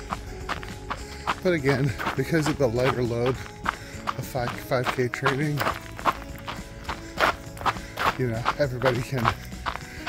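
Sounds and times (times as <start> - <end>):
runner's footfalls on paved trail: 0.0 - 10.0.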